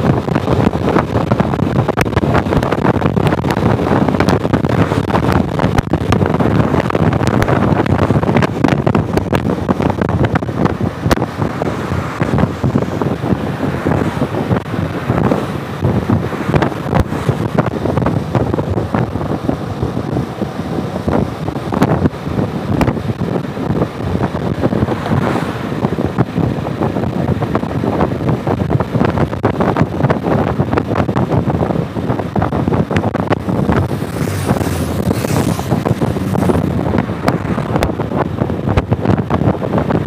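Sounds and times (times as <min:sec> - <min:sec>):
scooter engine and tyre noise: 0:00.0 - 0:40.0
wind buffeting microphone: 0:00.0 - 0:40.0.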